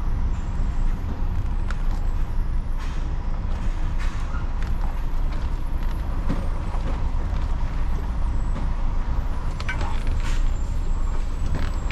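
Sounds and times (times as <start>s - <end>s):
lorry engine low rumble: 0.0s - 11.9s.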